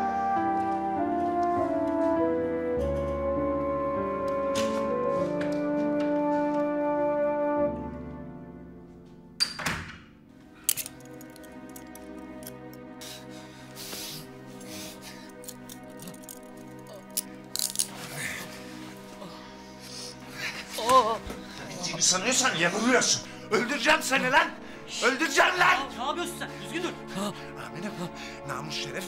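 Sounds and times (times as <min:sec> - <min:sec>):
brass chords: 0:00.0 - 0:09.4
soft background music: 0:00.0 - 0:29.0.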